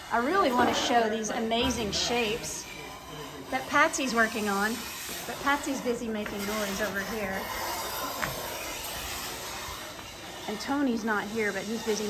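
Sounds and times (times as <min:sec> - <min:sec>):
steady equipment hiss: 0:00.0 - 0:12.0.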